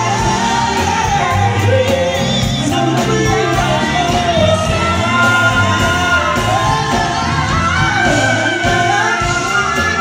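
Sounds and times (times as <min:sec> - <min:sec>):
live soul band playing: 0:00.0 - 0:10.0
woman and man singing duet: 0:00.0 - 0:10.0.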